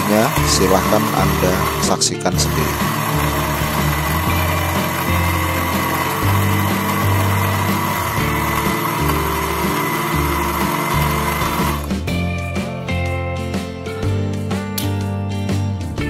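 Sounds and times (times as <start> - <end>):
blender grinding cement: 0.0 - 12.2.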